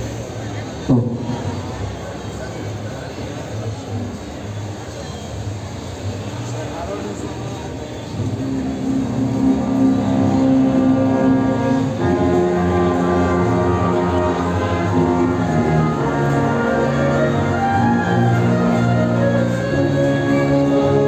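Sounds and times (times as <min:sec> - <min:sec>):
crowd chatter: 0:00.0 - 0:21.0
wind band playing: 0:08.1 - 0:21.0.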